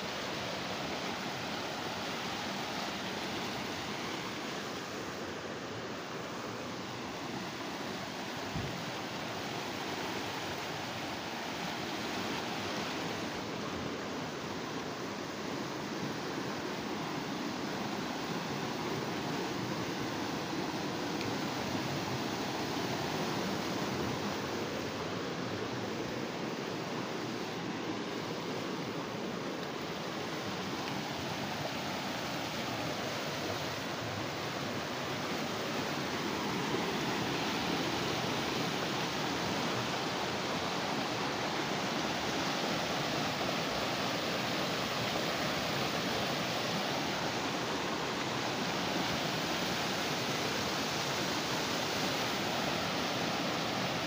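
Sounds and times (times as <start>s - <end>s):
river rushing over stones: 0.0s - 54.0s.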